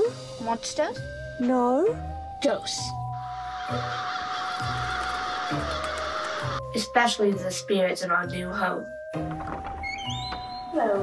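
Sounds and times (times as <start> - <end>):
music with held tone and low note: 0.0 - 11.0
flock of birds chattering: 3.2 - 6.6.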